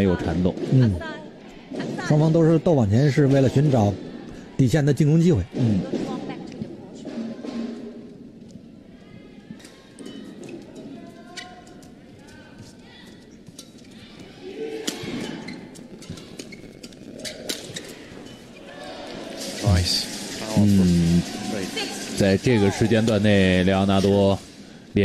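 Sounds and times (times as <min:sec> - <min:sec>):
arena background sound: 0:00.0 - 0:25.0.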